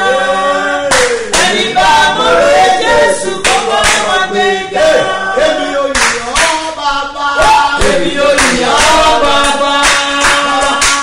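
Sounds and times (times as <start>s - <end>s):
people singing unaccompanied: 0.0s - 11.0s
hand clapping: 0.8s - 1.8s, 3.4s - 4.3s, 5.9s - 11.0s.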